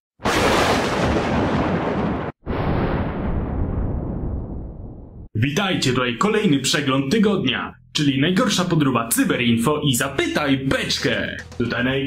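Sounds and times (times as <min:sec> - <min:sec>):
explosion-like noisy burst: 0:00.2 - 0:05.3.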